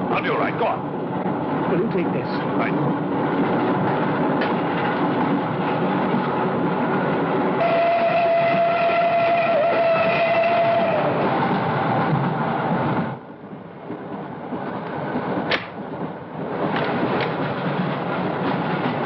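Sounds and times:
steam train rumbling: 0.0s - 19.0s
train whistle long note: 7.6s - 11.2s.

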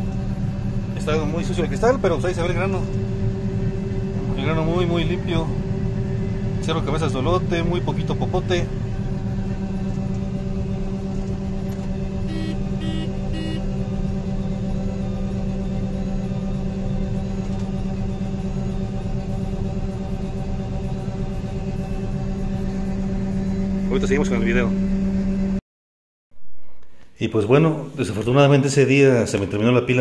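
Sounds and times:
combine harvester drone: 0.0s - 25.6s
short beeps: 12.3s - 13.6s.

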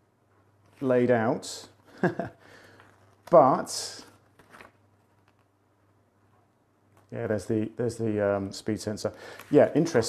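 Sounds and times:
paper pages rustling: 2.6s - 5.5s, 9.2s - 10.0s.

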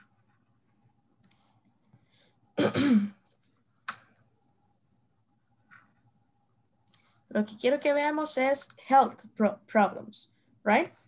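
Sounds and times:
person coughing: 2.6s - 3.2s.

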